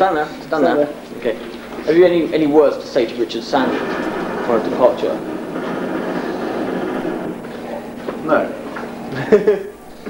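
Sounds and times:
murmur of background voices: 0:00.0 - 0:10.0
room noise: 0:00.0 - 0:10.0.

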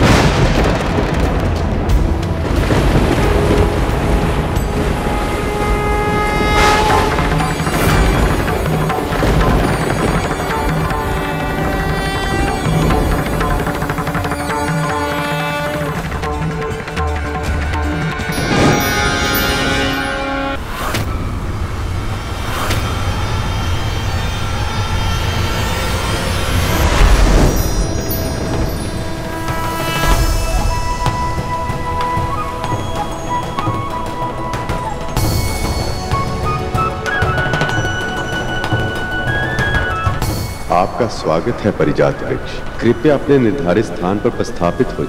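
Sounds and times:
deep rumble: 0:00.0 - 0:14.7
loud rushing swell: 0:02.1 - 0:15.0, 0:15.8 - 0:32.6
sustained horn-like tone: 0:02.9 - 0:32.6
rising whoosh: 0:04.5 - 0:10.6, 0:16.1 - 0:32.7.

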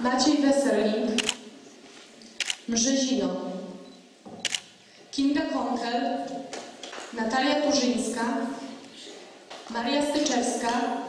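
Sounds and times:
camera shutter clicking: 0:01.2 - 0:01.4, 0:02.4 - 0:02.7, 0:04.4 - 0:04.7.

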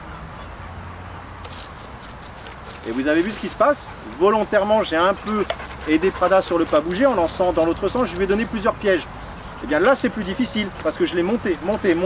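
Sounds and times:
dog footfalls on dry grass: 0:01.4 - 0:12.0
man's voice: 0:02.9 - 0:12.0.

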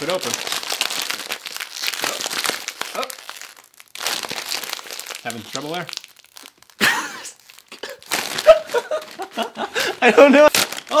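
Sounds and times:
plastic snack bag crinkling: 0:00.0 - 0:11.0.

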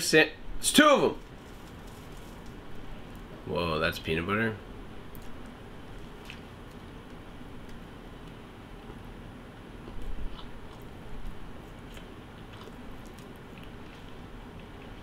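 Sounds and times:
person chewing food: 0:05.2 - 0:09.0, 0:09.8 - 0:15.0.

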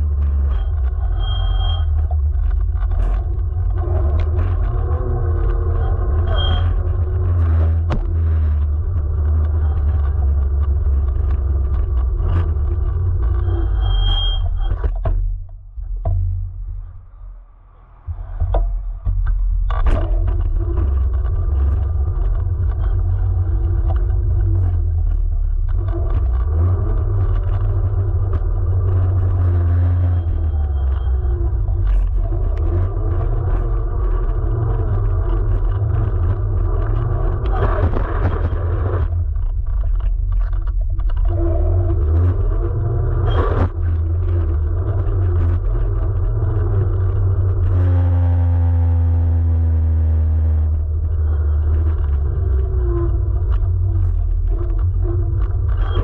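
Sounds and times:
tyre rumbling on asphalt: 0:00.0 - 0:16.6, 0:18.1 - 0:56.0.

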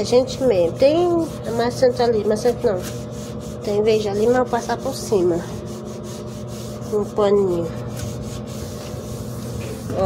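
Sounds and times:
sponge scrubbing laminate: 0:00.0 - 0:10.0
washing machine humming: 0:00.0 - 0:10.0.

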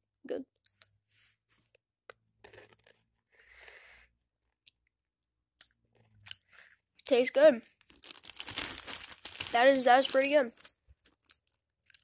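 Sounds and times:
chewing crunchy cracker: 0:10.6 - 0:12.0.

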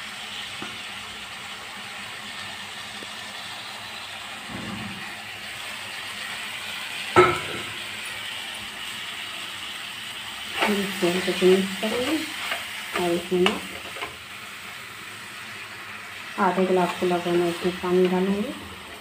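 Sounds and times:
curry hissing on stove: 0:00.0 - 0:19.0
metal utensil clinking on pan: 0:07.2 - 0:07.7.

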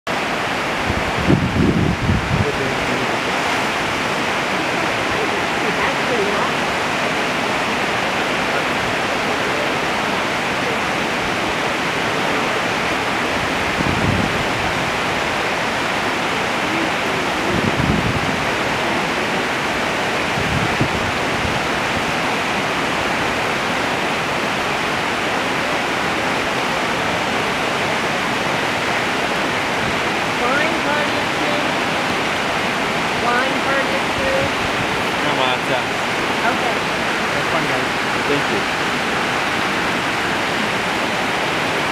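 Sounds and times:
rushing white water: 0:00.1 - 0:41.9.

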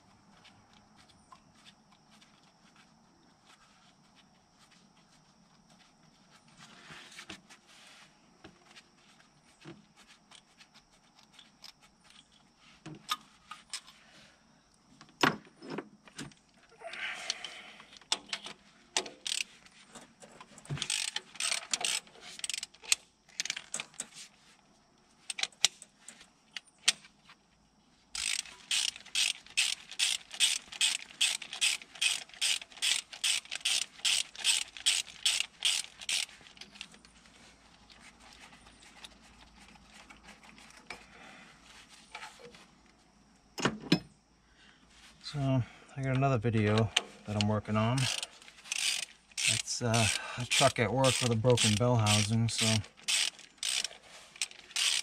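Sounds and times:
hand ratchet clicking: 0:19.1 - 0:19.5, 0:20.8 - 0:23.9, 0:28.2 - 0:36.9, 0:47.4 - 0:55.0.

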